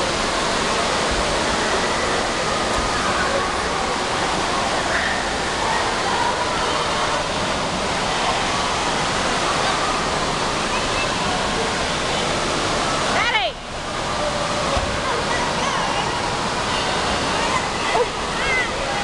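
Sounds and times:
rushing water: 0:00.0 - 0:19.0
children's voices echoing: 0:01.9 - 0:07.3, 0:13.4 - 0:19.0.

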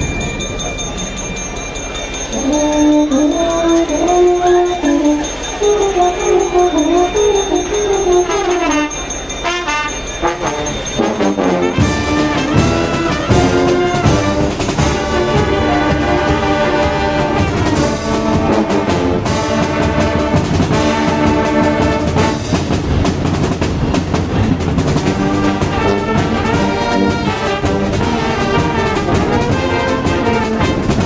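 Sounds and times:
drums: 0:00.0 - 0:31.0
brass band playing chords: 0:02.4 - 0:31.0.

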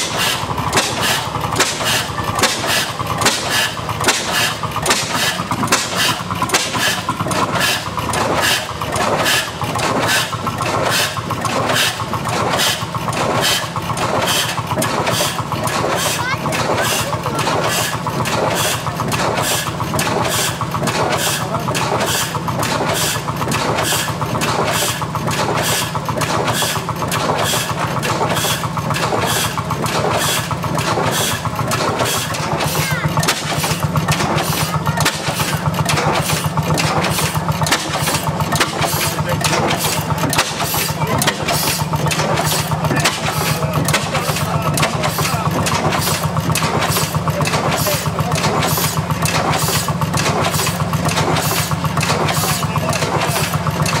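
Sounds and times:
stationary gas engine running: 0:00.0 - 0:54.0.

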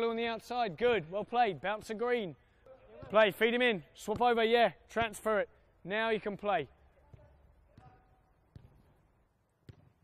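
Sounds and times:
football being kicked: 0:07.1 - 0:08.9, 0:09.6 - 0:10.0.

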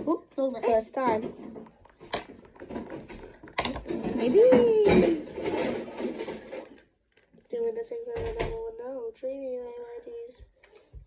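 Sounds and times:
handling noise rustling: 0:00.0 - 0:08.3.

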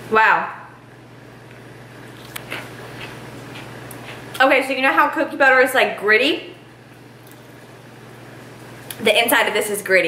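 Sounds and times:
low room hum: 0:00.0 - 0:10.0
chewing cookie: 0:02.0 - 0:04.4.

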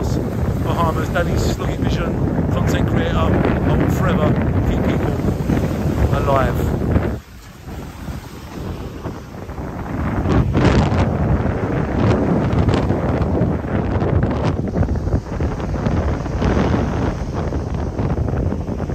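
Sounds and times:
surf breaking on beach: 0:00.0 - 0:18.9
wind buffeting microphone: 0:00.0 - 0:18.9.

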